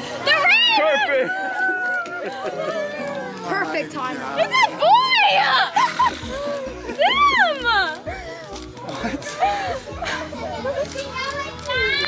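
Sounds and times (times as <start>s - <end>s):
excited voices squealing: 4.4s - 7.9s.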